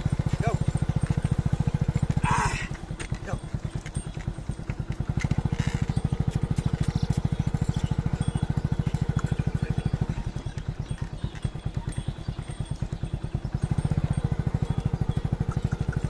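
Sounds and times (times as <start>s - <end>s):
small engine running: 0.0s - 16.0s.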